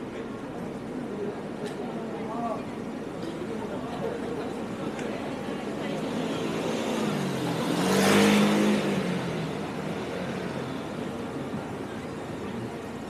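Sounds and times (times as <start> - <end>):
vehicle passing by: 6.0 - 11.0.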